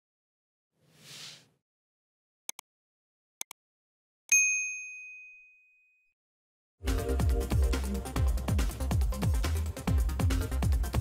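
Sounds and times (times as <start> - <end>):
notification bell ding: 4.3 - 6.0.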